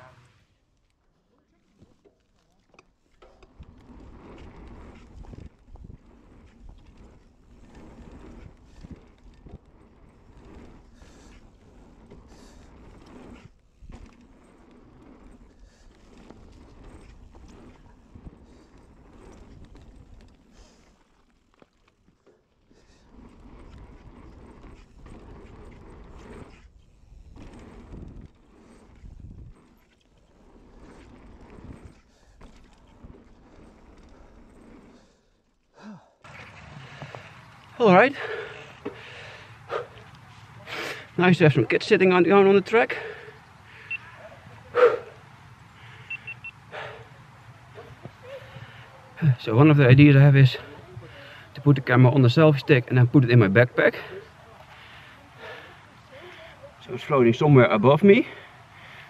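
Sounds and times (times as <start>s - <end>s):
bike knocking and rattling: 0.0s - 59.0s
bike tyres rolling on dirt: 0.0s - 59.0s.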